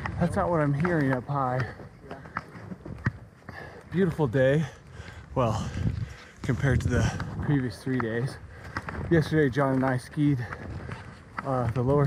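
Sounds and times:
ski steps crunching in snow: 5.0s - 12.0s.

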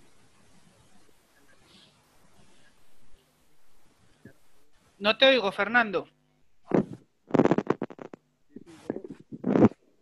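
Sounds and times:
choppy voice on video call: 4.2s - 9.9s.

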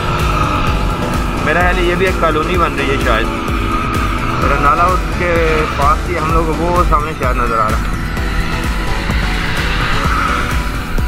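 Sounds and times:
background music with beat: 0.0s - 11.0s
car tyres hissing on wet road: 0.0s - 11.0s.

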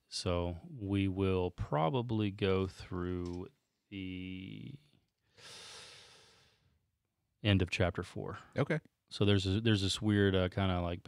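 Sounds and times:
man breathing in: 5.2s - 6.8s.

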